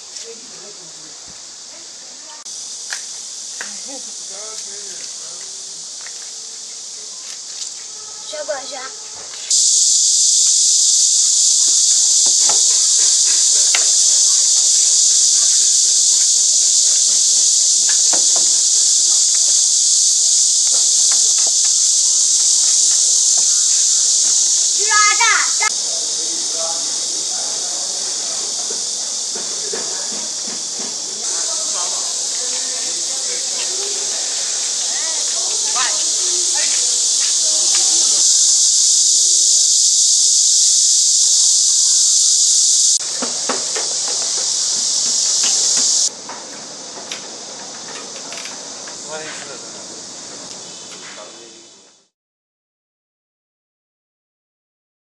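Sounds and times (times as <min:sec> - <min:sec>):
high-pitched insect chorus: 0:00.0 - 0:52.1
loud high-pitched hiss: 0:00.0 - 0:52.1.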